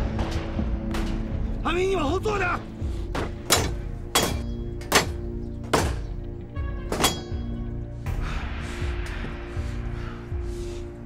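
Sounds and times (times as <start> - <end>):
dramatic music score: 0.0 - 11.0.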